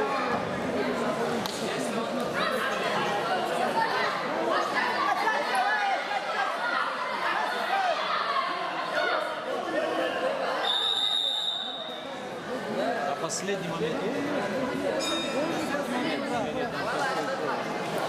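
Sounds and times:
chatter echoing in a hall: 0:00.0 - 0:18.0.

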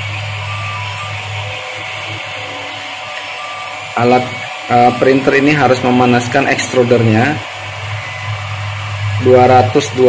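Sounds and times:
low hum: 0:00.0 - 0:10.0
motor whines: 0:00.0 - 0:10.0
printer fan hiss: 0:00.0 - 0:10.0.

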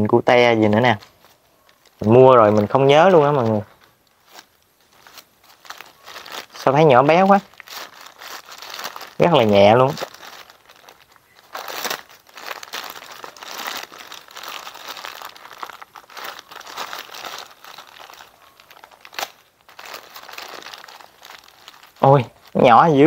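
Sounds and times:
plastic bag crinkling: 0:00.6 - 0:23.0.

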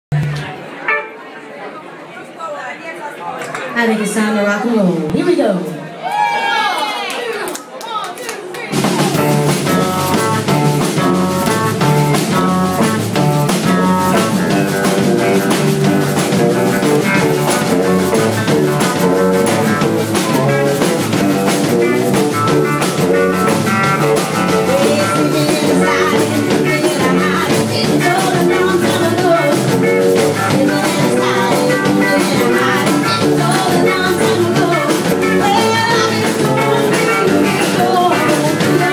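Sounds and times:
rock band playing: 0:00.1 - 0:01.4, 0:08.6 - 0:38.9
drum kit beat: 0:08.6 - 0:38.9
electric guitar: 0:08.8 - 0:38.9.

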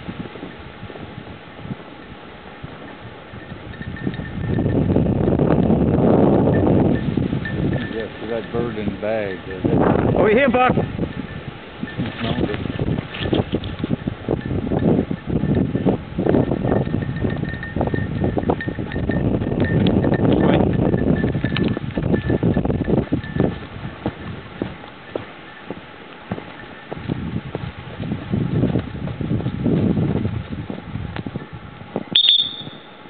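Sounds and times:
footsteps through a field: 0:00.0 - 0:19.0, 0:19.6 - 0:33.0.

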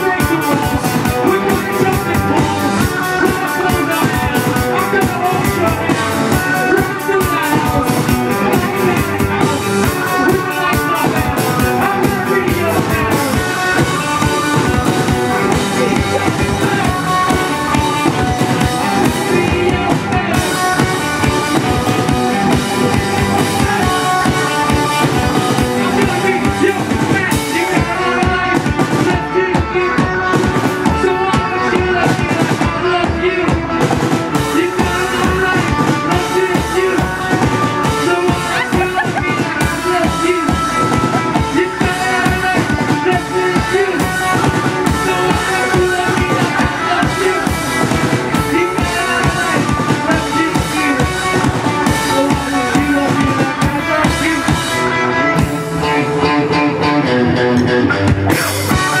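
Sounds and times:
drum kit beat: 0:00.0 - 0:59.0
electric guitars: 0:00.0 - 0:59.0.

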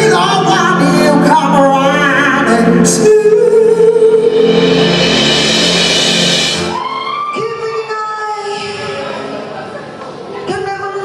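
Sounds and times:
live band music with singing: 0:00.0 - 0:09.0
cymbal wash: 0:04.2 - 0:07.1.

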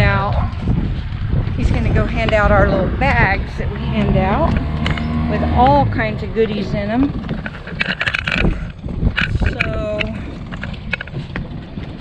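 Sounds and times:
person's voice: 0:00.0 - 0:00.4, 0:01.6 - 0:07.1, 0:09.4 - 0:10.2
wind buffeting microphone: 0:00.0 - 0:12.0.

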